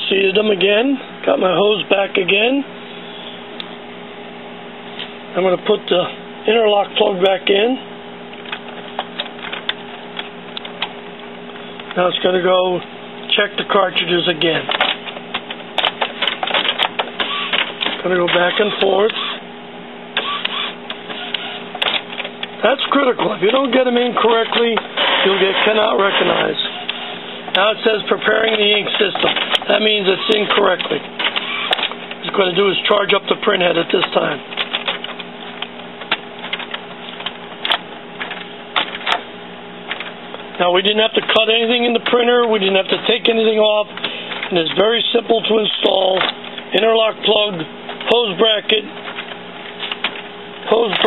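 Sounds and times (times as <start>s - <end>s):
printer motor hum: 0.0s - 51.0s
printer mechanism clicks and ticks: 14.7s - 19.4s, 20.2s - 39.3s, 47.2s - 51.0s.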